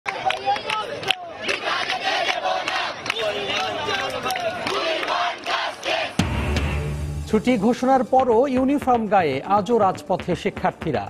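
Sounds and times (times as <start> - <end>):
crowd shouting: 0.1 - 6.3.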